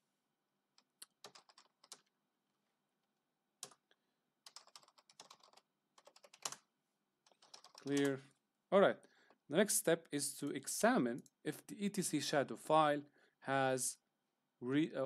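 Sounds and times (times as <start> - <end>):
computer keyboard typing: 1.0 - 2.1, 3.6 - 3.8, 4.4 - 8.2.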